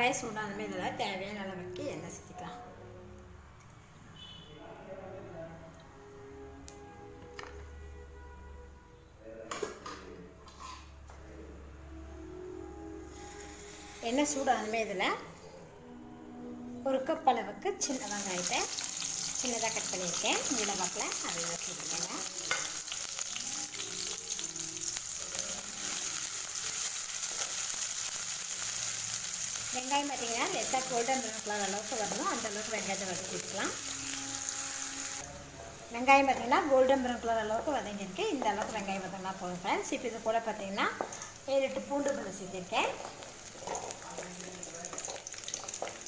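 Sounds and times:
shallots sizzling in hot oil: 13.1s - 15.0s, 17.8s - 46.0s.

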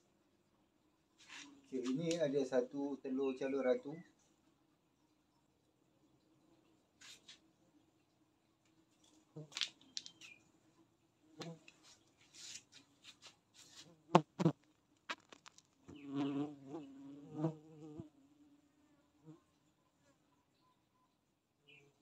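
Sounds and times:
bees buzzing: 15.9s - 18.2s.

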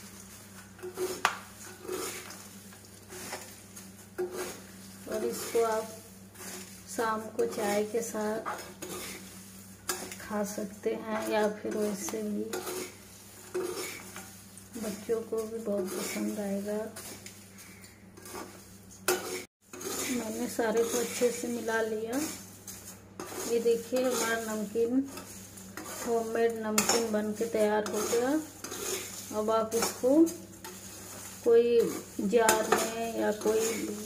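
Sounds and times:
spatula scraping in a pan: 0.0s - 34.0s
steady low hum: 0.0s - 34.0s.

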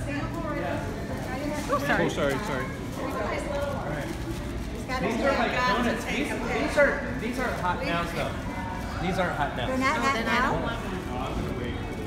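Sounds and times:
group of people talking: 0.0s - 12.0s.

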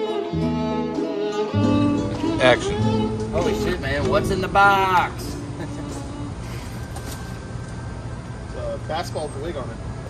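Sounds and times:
street background rumble: 0.3s - 10.0s
man's voice: 2.4s - 5.8s.

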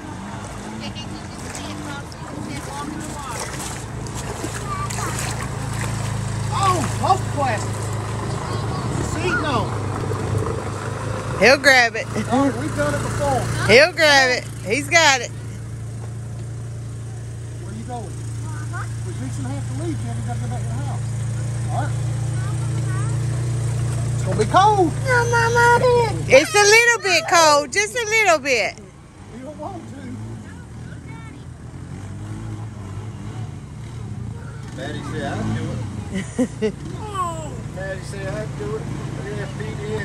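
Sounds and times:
water splashing: 0.0s - 15.5s
all-terrain vehicle engine drone: 0.0s - 40.0s
people shouting: 25.1s - 28.0s, 37.0s - 37.7s
faint voices: 36.9s - 40.0s.

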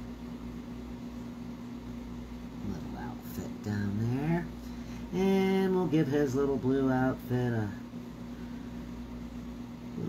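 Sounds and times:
background hum: 0.0s - 10.0s.

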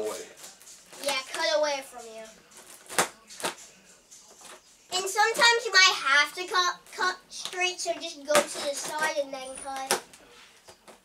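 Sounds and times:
plastic crinkling: 8.3s - 10.0s.

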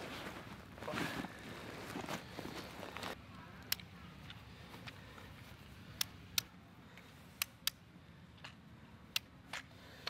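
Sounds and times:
backpack rustling and scraping: 0.0s - 3.2s.

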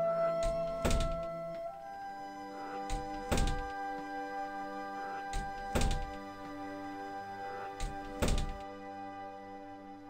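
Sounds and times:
background music chords: 0.0s - 10.0s
door thudding: 0.4s - 1.7s, 2.8s - 3.9s, 5.3s - 6.3s, 7.8s - 8.6s.

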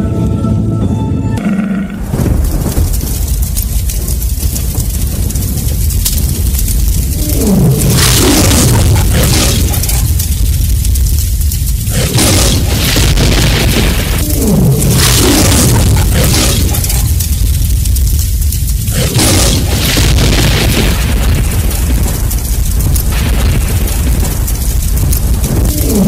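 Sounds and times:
loud blasts: 1.9s - 26.0s
rumble of booms: 1.9s - 26.0s.

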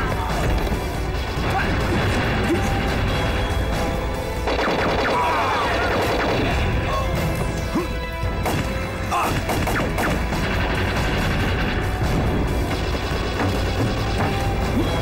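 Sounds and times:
dramatic music score: 0.0s - 15.0s.

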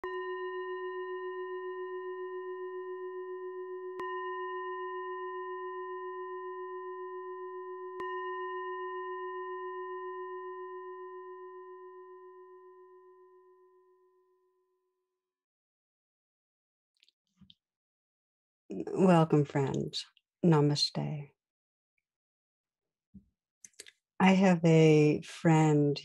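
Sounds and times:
singing bowl struck and ringing: 0.0s - 14.3s.

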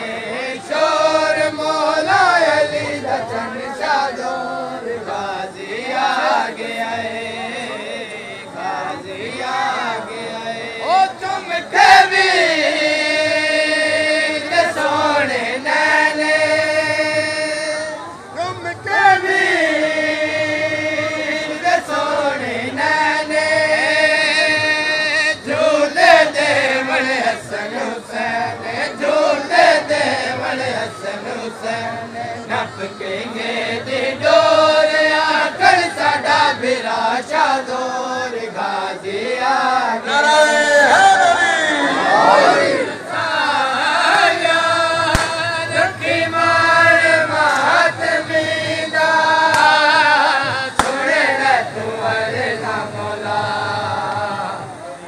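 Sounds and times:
person chanting devotionally: 0.0s - 55.0s.

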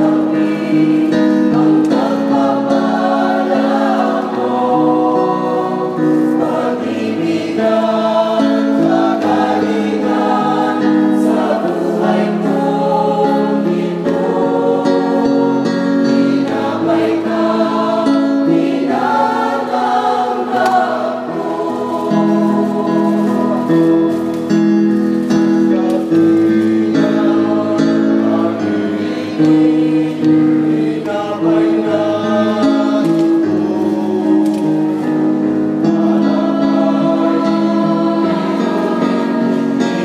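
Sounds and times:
mixed choir singing a hymn: 0.0s - 40.0s.

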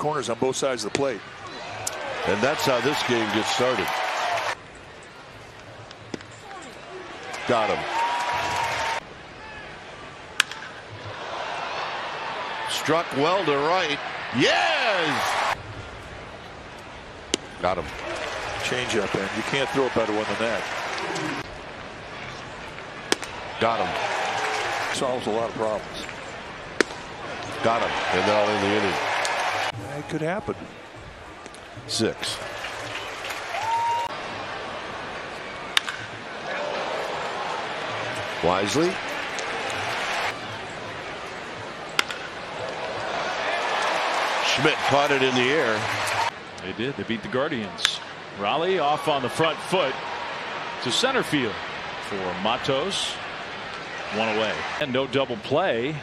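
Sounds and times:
crowd hum: 0.8s - 56.0s
wooden bat hitting ball: 10.4s - 10.8s, 23.1s - 23.4s, 26.8s - 27.1s, 35.8s - 36.1s, 42.0s - 42.3s
crowd murmur: 20.5s - 23.6s.

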